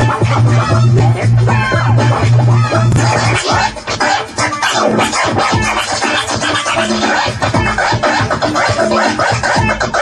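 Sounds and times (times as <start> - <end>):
turntable scratching: 0.0 - 10.0.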